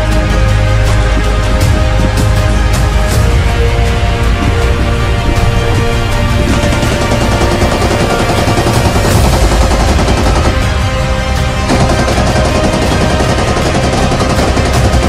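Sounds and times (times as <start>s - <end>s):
soundtrack music: 0.0s - 15.0s
machine gun firing rapidly: 6.5s - 10.8s, 11.4s - 15.0s.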